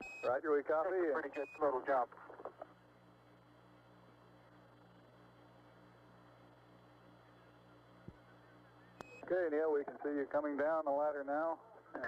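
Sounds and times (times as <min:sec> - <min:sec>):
radio hiss and pulsing hum: 0:00.0 - 0:12.0.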